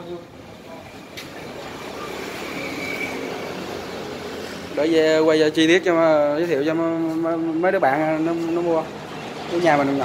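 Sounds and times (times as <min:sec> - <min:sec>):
road vehicle passing: 0:00.0 - 0:10.0.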